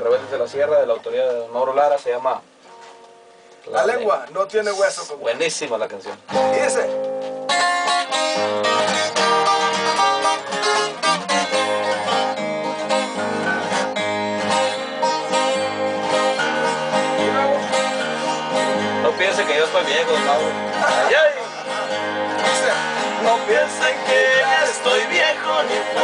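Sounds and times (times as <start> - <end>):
acoustic guitars strumming: 1.9 - 5.0, 6.0 - 26.0
picked guitar melody: 2.5 - 4.3, 6.0 - 26.0.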